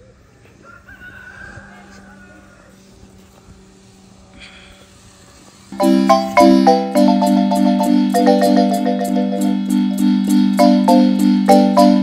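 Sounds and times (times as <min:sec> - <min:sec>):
music of ringing struck notes: 0:05.8 - 0:12.0.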